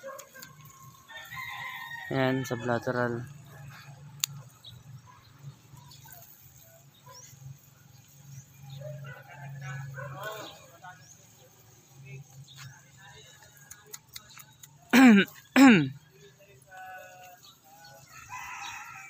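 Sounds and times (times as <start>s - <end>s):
faint distant voices: 0.0s - 19.0s.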